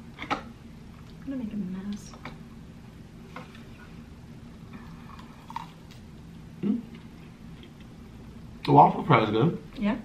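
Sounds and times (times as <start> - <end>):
low steady hum: 0.0 - 10.0
person murmuring mm: 6.6 - 6.9.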